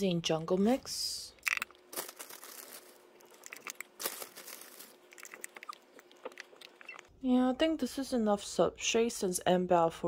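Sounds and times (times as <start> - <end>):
substrate crackling and rustling: 0.7 - 7.1.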